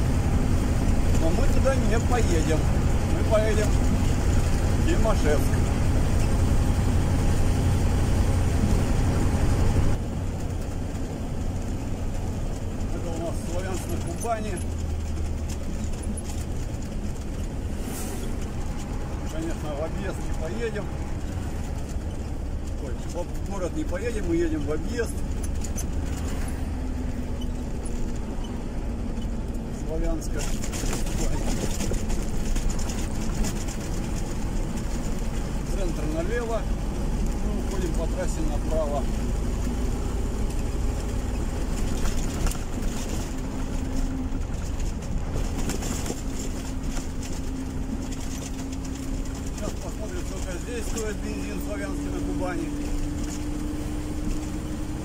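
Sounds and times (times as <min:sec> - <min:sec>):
car engine and tyre noise: 0:00.0 - 0:55.0.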